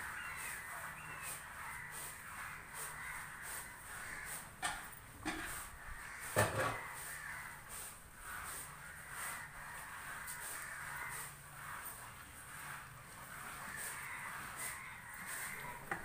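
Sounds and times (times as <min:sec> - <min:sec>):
birds calling: 0:00.0 - 0:16.0.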